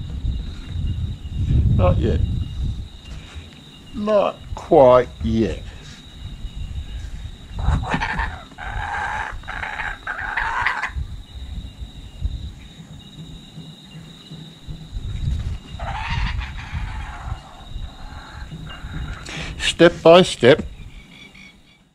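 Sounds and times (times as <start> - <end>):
wind rumble on microphone: 0.0 - 21.6
kookaburra raspy calls: 7.6 - 11.0, 15.8 - 19.4.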